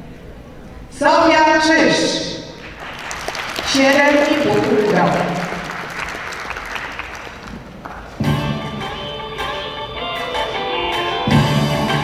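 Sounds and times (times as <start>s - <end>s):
audience applause: 2.6s - 8.2s
instrumental music with bass line: 8.2s - 12.0s.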